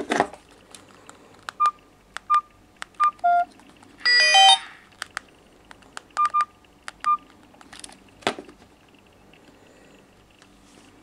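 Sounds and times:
phone keypad beeps: 1.6s - 3.5s, 4.1s - 4.7s, 6.2s - 7.2s
phone jingle: 3.0s - 4.7s.

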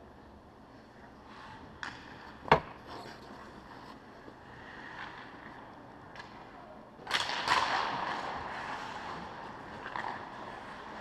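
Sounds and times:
skates scraping on ice: 2.9s - 6.2s, 7.1s - 11.0s.

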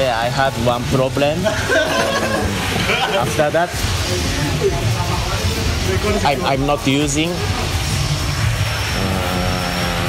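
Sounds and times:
low pitched hum: 0.0s - 10.0s
thin high whine: 0.0s - 10.0s
mechanical engine drone: 3.7s - 10.0s.

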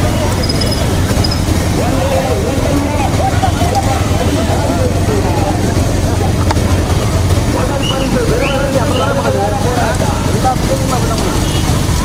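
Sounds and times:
motorcycle engines rumbling: 0.0s - 12.0s
men shouting: 1.6s - 6.4s, 7.4s - 10.7s.

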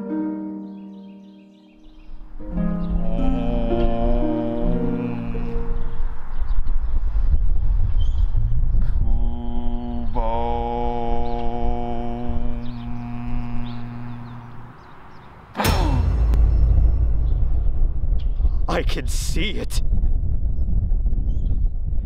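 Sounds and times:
wind rumble on microphone: 2.0s - 14.8s, 16.3s - 22.0s
man chanting long note: 2.8s - 6.0s, 9.0s - 14.7s
loud burst with falling pitch: 15.6s - 20.8s.

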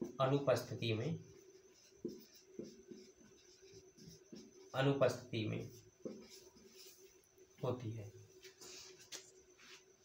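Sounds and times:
marker pen writing on whiteboard: 0.0s - 10.0s.

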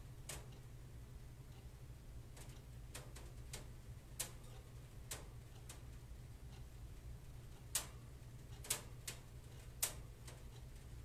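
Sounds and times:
low steady hum: 0.0s - 11.0s
faint clicks: 2.4s - 6.7s, 7.5s - 10.9s.

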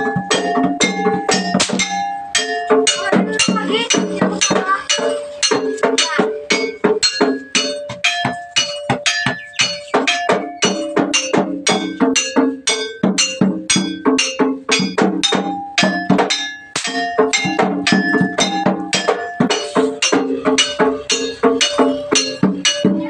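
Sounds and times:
drum strokes: 0.0s - 23.0s.

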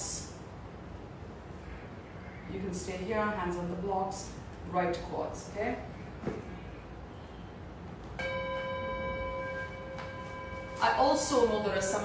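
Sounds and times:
bell-like chime ringing: 8.2s - 12.0s.

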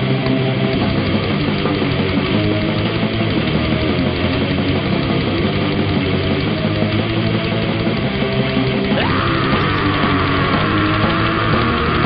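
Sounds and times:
distorted guitars: 0.0s - 12.0s
fast dense drumming: 0.0s - 12.0s.

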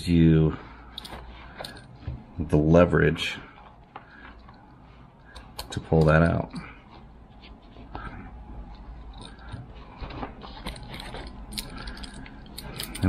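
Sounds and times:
metal clicking and jingling: 10.4s - 13.0s.

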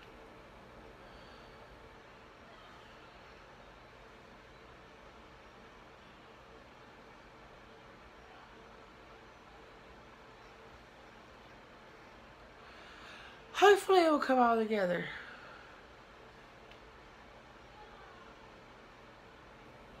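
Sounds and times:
faint hiss of room air: 0.0s - 20.0s
faint steady hum: 0.0s - 20.0s.

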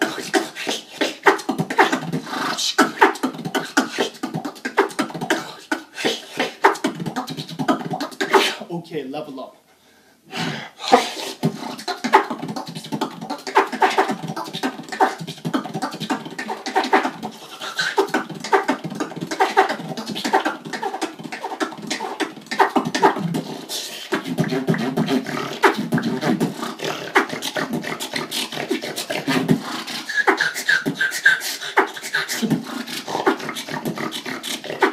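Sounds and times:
person beatboxing: 0.0s - 8.8s, 10.8s - 34.9s.

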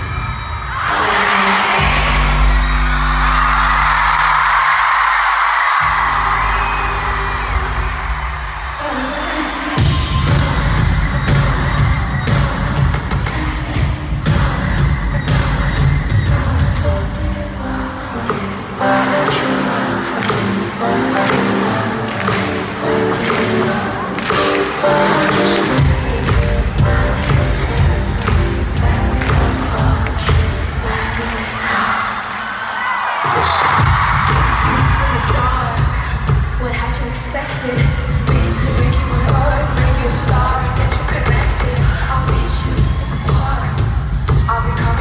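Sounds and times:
live pop music over loudspeakers: 0.0s - 45.0s
heavy bass beat: 9.8s - 17.5s, 22.2s - 31.5s.

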